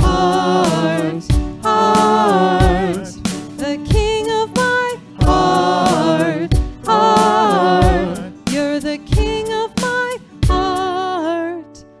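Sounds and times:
voices singing held notes: 0.0 - 8.7
steady drum beat: 0.0 - 9.6.

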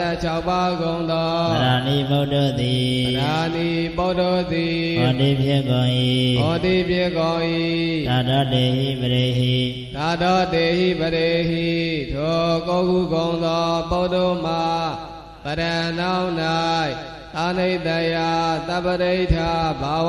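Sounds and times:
person chanting scripture: 0.0 - 20.0.

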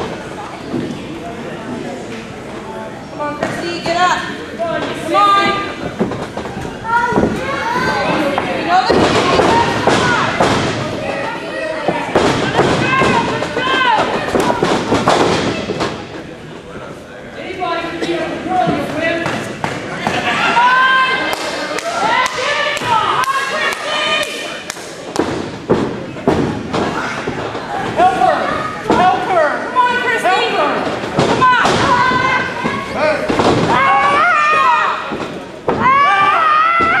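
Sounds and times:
people shouting: 20.2 - 24.4, 28.0 - 37.0.

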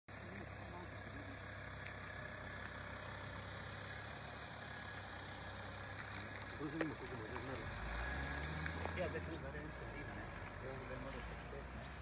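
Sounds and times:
engine idling: 0.1 - 7.6.

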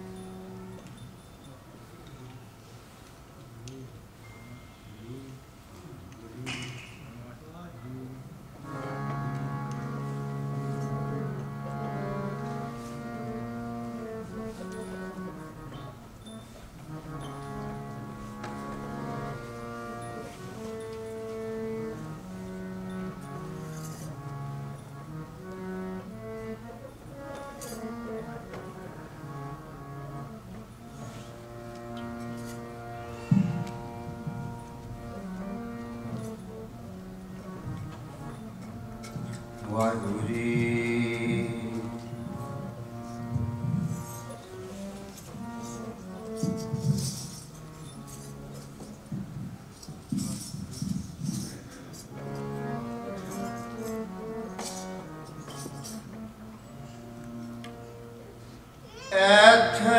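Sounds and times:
harmonium melody: 0.0 - 6.3, 7.5 - 59.9.

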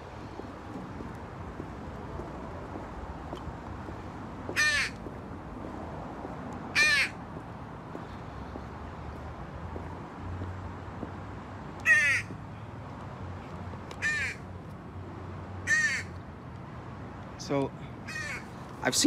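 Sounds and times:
crow cawing: 4.5 - 5.0, 6.7 - 7.2, 11.8 - 12.3, 14.0 - 14.5, 15.6 - 16.2, 18.0 - 18.6.

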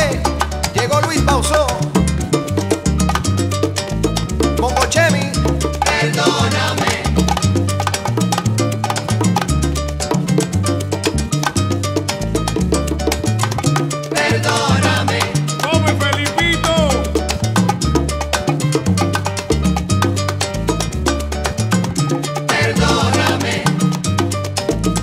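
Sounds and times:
repeating bass line: 0.0 - 25.0
salsa percussion groove: 0.0 - 25.0
sliding melody line: 0.0 - 25.0.

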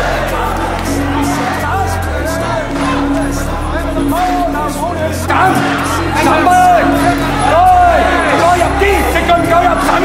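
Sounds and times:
man shouting instructions: 3.6 - 10.0.

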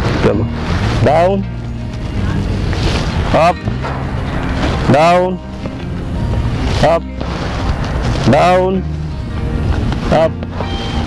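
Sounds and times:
background music: 0.0 - 11.0
man calling out commands: 10.1 - 10.4.

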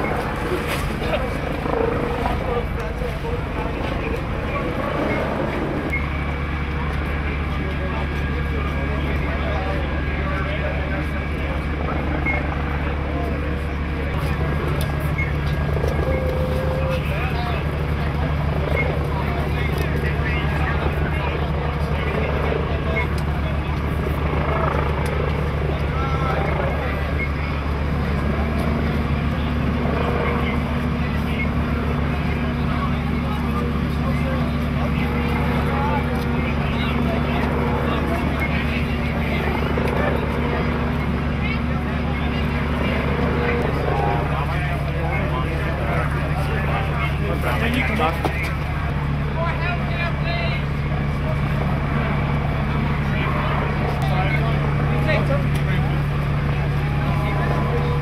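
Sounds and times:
faint indistinct voices: 0.0 - 58.0
low engine drone pulsing: 0.0 - 58.0.

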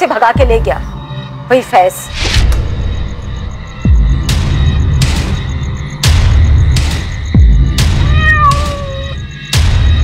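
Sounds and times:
music with deep pulsing beat: 2.5 - 10.0
cat meowing: 8.0 - 9.2.

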